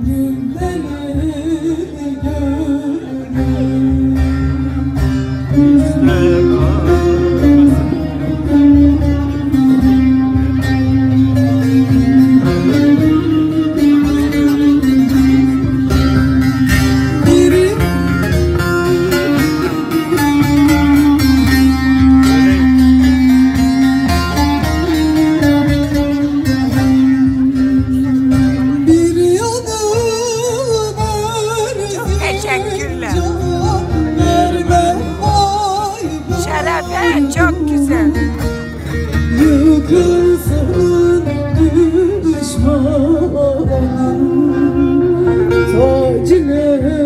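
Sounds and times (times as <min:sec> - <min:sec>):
plucked string instrument melody: 0:00.0 - 0:47.0.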